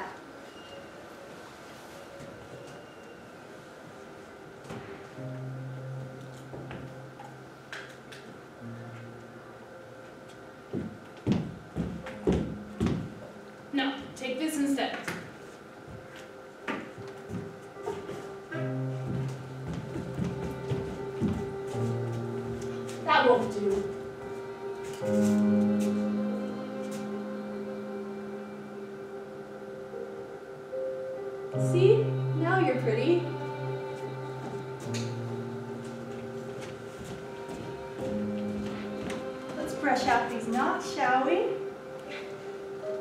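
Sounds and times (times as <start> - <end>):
boots knocking on stage floor: 10.8 - 13.2
sustained low chord: 18.5 - 42.2.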